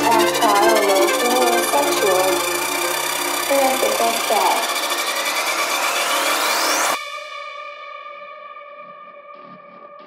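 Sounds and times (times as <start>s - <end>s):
deep bassline: 0.0s - 7.0s
rising synth sweep: 0.0s - 7.2s
psytrance music: 0.0s - 10.0s.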